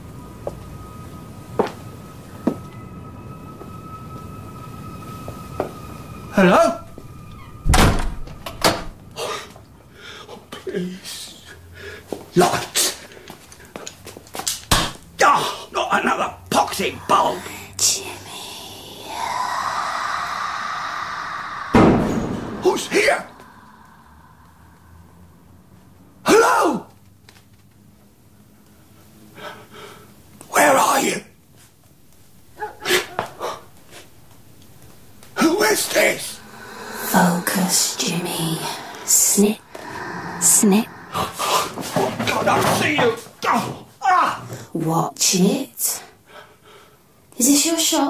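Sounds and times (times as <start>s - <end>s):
eerie hazy tone: 0.0s - 10.6s, 16.5s - 26.2s, 33.2s - 43.4s
noisy breath: 11.6s - 12.3s, 17.3s - 25.9s, 29.0s - 30.3s, 33.1s - 43.3s, 46.1s - 47.2s
person whispering: 17.0s - 21.8s, 22.6s - 25.0s, 35.4s - 43.0s
brief vocal sounds: 18.5s - 25.2s, 35.4s - 42.8s
loud heavy slam: 21.7s - 23.2s.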